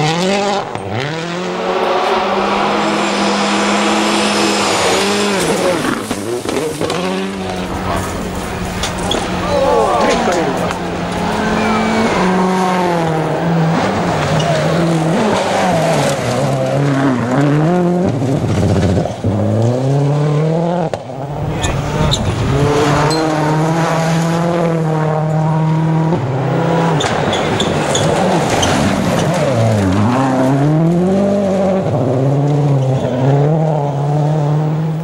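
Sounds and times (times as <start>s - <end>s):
rally car engines revving: 0.0s - 35.0s.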